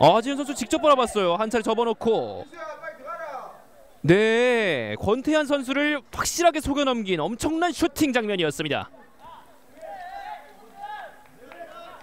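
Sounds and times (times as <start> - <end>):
distant voices shouting: 9.1 - 12.0.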